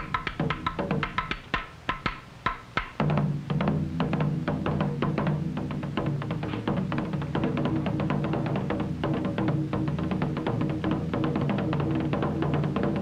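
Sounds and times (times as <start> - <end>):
barrel drum struck with sticks: 0.0 - 13.0.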